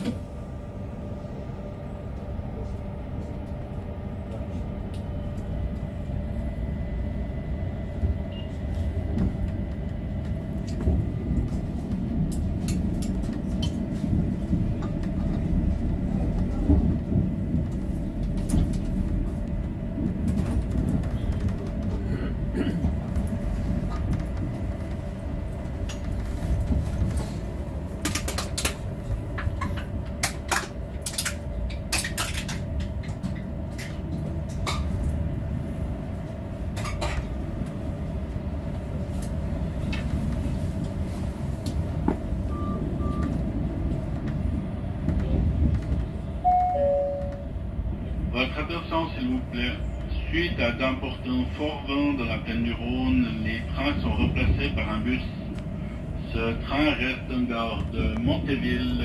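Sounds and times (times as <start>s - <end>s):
train motor hum: 0.0s - 59.0s
train wheels rumbling on rail: 0.0s - 59.0s.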